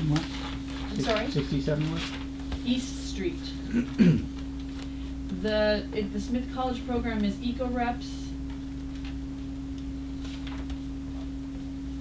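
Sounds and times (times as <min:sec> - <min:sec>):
steady electrical tone: 0:00.0 - 0:12.0.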